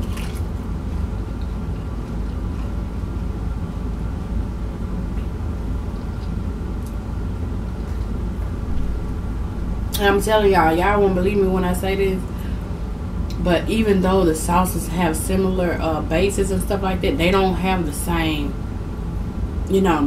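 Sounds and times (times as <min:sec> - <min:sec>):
person chewing crunchy food: 0:00.0 - 0:03.2
steady low hum: 0:00.0 - 0:20.0.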